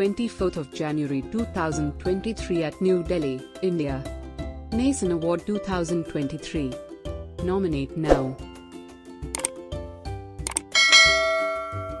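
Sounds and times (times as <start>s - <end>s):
background music with steady beat: 0.0s - 12.0s
notification bell chime: 10.8s - 12.0s.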